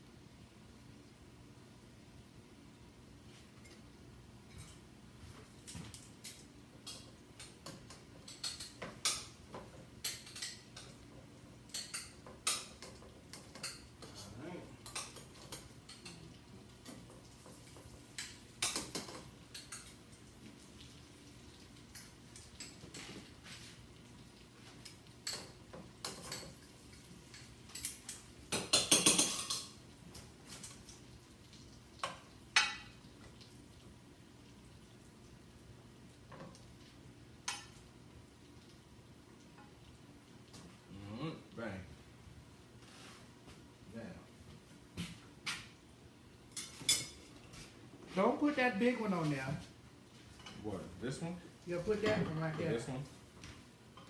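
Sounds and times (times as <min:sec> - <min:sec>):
cutlery clinking on plates: 0:11.7 - 0:20.0, 0:25.2 - 0:29.8, 0:32.0 - 0:33.0.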